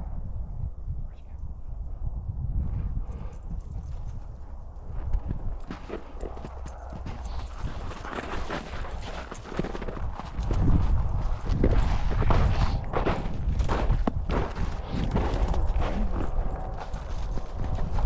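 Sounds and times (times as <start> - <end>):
wind rumble on microphone: 0.0 - 18.0
footsteps crunching through snow: 4.9 - 18.0.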